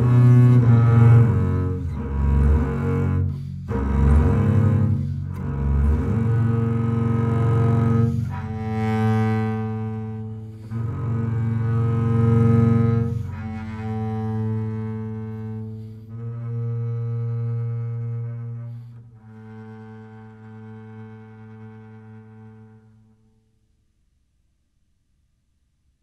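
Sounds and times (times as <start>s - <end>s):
bowed double bass: 0.0s - 23.4s.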